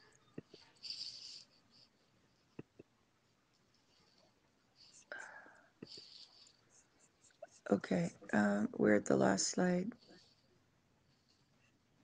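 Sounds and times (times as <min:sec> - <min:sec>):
breathy whisper-like noise: 0:03.8 - 0:08.3.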